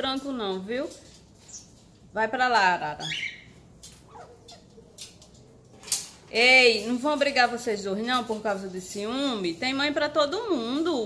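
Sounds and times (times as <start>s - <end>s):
parrot squawk: 3.0s - 3.5s, 4.1s - 4.7s.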